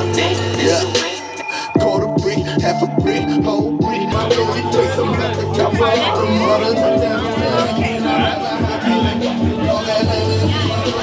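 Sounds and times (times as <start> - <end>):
rapping over heavy bass beat: 0.0 - 11.0.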